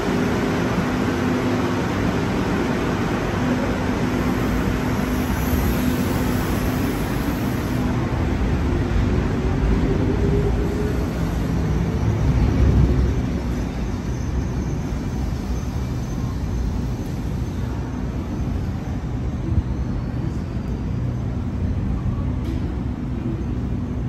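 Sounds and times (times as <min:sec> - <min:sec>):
electric train wheels and motors rumbling: 0:00.0 - 0:24.0.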